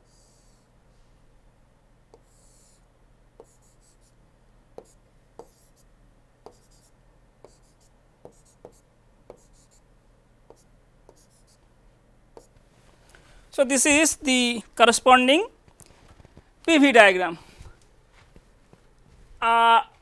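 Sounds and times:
scratchy pen strokes: 0.0 - 0.6, 2.2 - 2.8, 3.4 - 4.2, 4.8 - 5.9, 6.5 - 9.8, 10.5 - 11.6
stylus tapping on tablet: 4.8 - 5.7, 6.4 - 6.8, 7.4 - 9.7.

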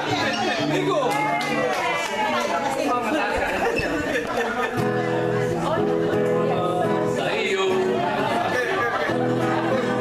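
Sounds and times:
acoustic guitar chords: 0.0 - 1.7, 4.7 - 10.0
people talking in a hall: 0.0 - 10.0.

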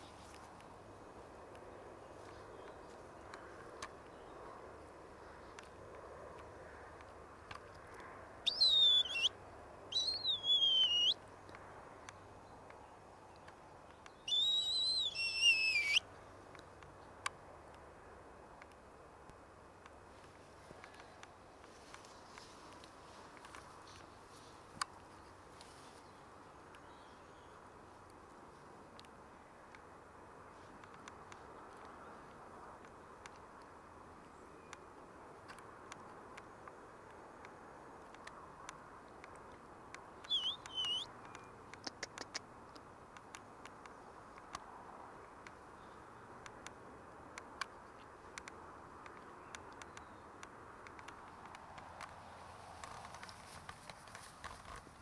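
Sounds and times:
faint ticks: 16.1 - 26.0, 27.6 - 55.0.

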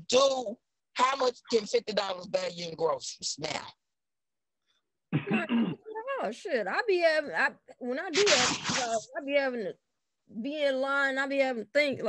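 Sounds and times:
person speaking: 0.0 - 3.7, 8.0 - 9.3
brief vocal sound over video call: 8.2 - 9.1.

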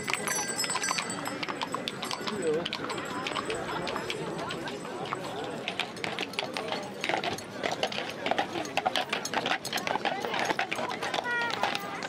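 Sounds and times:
crowd talking: 0.0 - 12.0
hooves clopping on cobblestones: 0.0 - 12.0.

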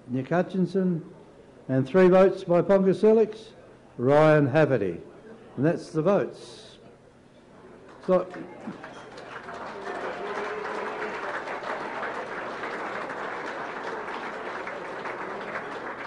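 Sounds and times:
diners applauding: 7.9 - 16.0.

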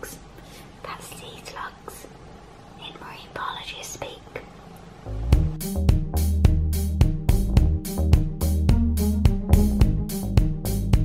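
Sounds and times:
woman whispering: 0.0 - 2.2, 2.8 - 4.6.

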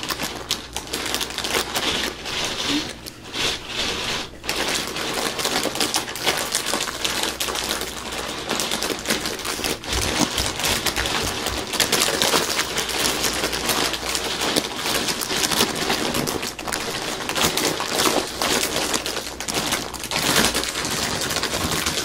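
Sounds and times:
plastic bag crinkling: 0.0 - 22.0.

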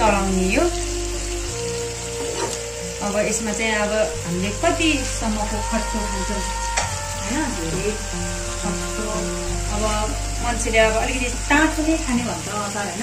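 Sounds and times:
food sizzling in a pan: 0.0 - 13.0
music playing: 0.0 - 13.0.

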